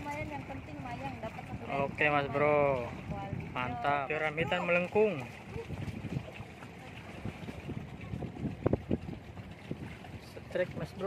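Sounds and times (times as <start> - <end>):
sea water washing against rocks: 0.0 - 11.0
wind buffeting microphone: 0.0 - 11.0.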